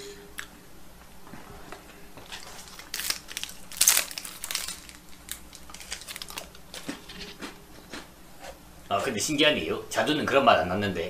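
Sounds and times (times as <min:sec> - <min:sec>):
plastic packaging crinkling: 0:02.2 - 0:07.4.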